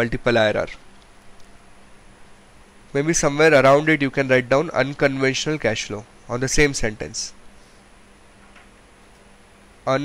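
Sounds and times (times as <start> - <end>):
man speaking: 0.0 - 0.8, 2.9 - 7.4
faint low hum: 0.0 - 10.0.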